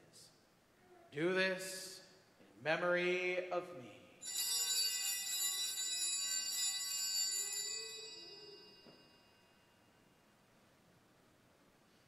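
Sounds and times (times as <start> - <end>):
altar bells shaken: 4.2 - 9.6.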